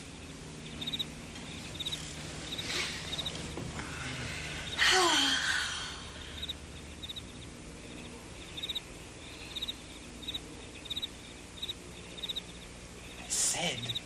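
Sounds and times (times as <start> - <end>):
cricket chirping: 0.0 - 3.4, 5.9 - 14.0
person breathy vocal sound: 3.8 - 6.3.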